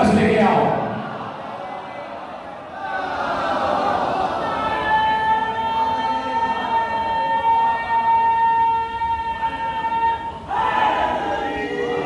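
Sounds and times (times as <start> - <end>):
congregation chanting in unison: 0.0 - 12.0.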